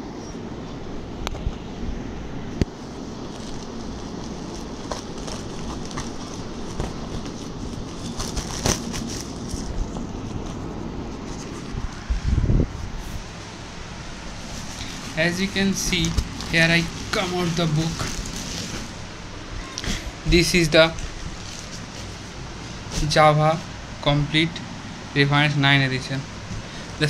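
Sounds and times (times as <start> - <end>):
plastic bag crinkling: 2.8 - 12.1, 14.0 - 19.3, 20.4 - 23.0.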